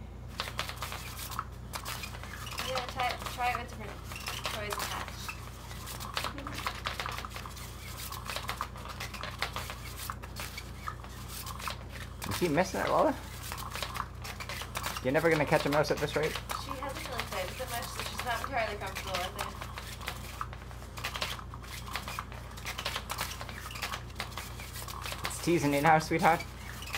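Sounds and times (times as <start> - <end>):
toy motor humming: 0.3 - 26.9.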